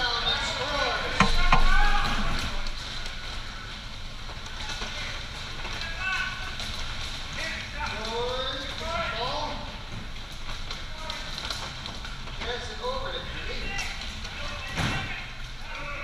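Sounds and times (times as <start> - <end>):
players shouting in echoing hall: 0.0 - 2.8, 13.5 - 16.0
bumper cars knocking: 1.1 - 2.7.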